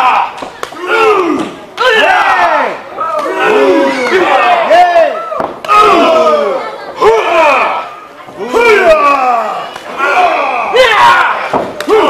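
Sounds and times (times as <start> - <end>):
audience shouting and yelling: 0.0 - 12.0.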